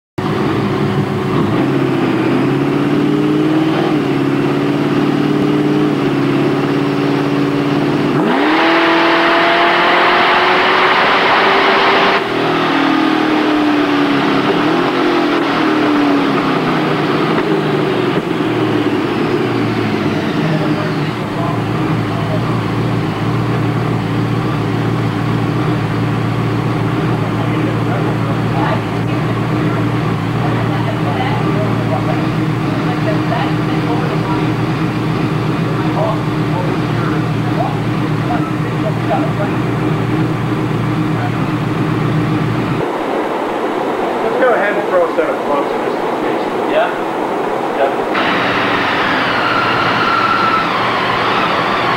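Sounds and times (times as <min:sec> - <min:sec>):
engine revving on a dyno: 0:00.2 - 0:42.9, 0:48.1 - 0:51.9.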